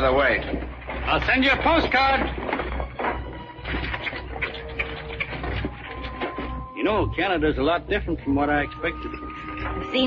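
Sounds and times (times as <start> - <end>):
horse hooves clopping: 0.0 - 10.0
soft background music: 0.0 - 10.0
wagon rolling: 0.0 - 10.0.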